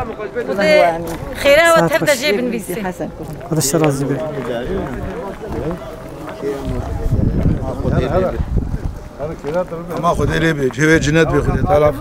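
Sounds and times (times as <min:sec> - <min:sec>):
wind rumbling on microphone: 0:03.2 - 0:12.0
men talking: 0:03.3 - 0:12.0.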